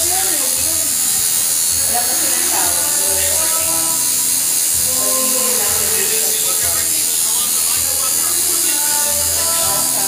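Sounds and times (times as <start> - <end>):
tattoo machine buzzing: 0.0 - 10.0.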